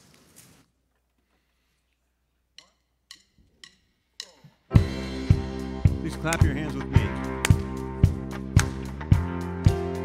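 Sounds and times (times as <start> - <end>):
drumsticks clicking together: 2.5 - 4.6.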